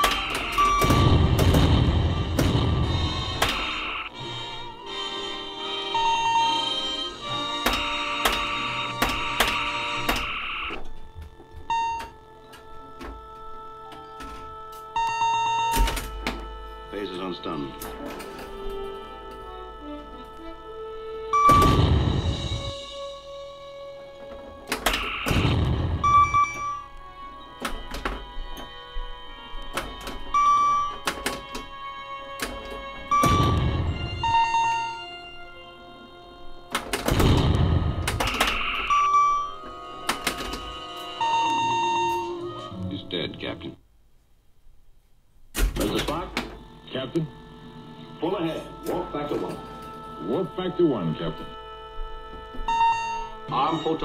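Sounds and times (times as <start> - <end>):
pinball solenoid clicks and thunks: 0.0 - 1.6, 7.6 - 10.3, 15.7 - 16.5
electronic bleeps and tones: 0.0 - 4.2, 8.4 - 10.8, 11.7 - 12.2, 21.4 - 22.8, 25.0 - 26.9, 33.1 - 35.2, 38.2 - 39.6, 41.2 - 42.8, 52.7 - 54.0
background music: 0.0 - 44.0, 45.5 - 54.0.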